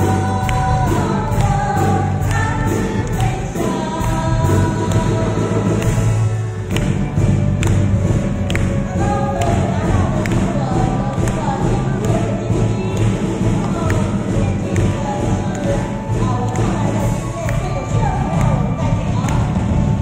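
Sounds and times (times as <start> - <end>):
woman singing through microphone: 0.0 - 6.2, 8.5 - 20.0
audience clapping along: 0.0 - 20.0
live pop band: 0.0 - 20.0.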